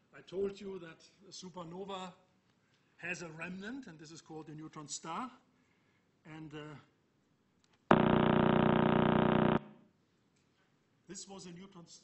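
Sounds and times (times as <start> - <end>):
loud steady buzzing tone: 7.9 - 9.8.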